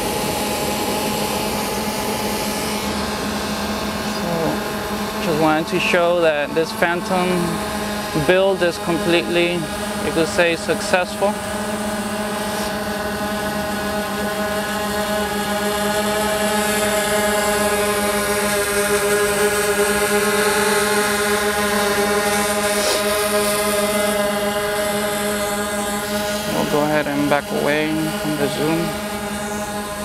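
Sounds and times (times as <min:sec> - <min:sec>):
drone propellers buzzing: 0:00.0 - 0:30.0.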